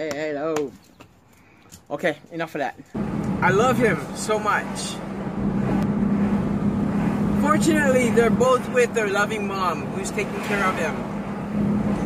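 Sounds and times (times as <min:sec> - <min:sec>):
car cabin low hum: 0:03.0 - 0:12.0.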